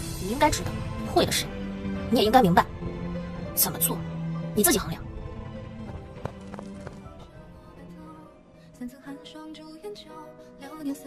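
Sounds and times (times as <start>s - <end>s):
sustained background score: 0.0s - 11.0s.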